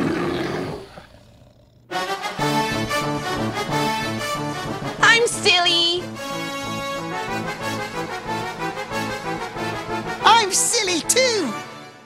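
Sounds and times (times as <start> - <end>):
cartoon monster roar: 0.0 - 2.0.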